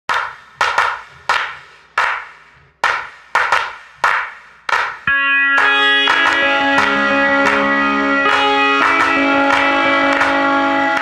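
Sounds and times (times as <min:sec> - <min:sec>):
sharp knock-like percussive hits: 0:00.1 - 0:07.7, 0:08.3 - 0:10.4.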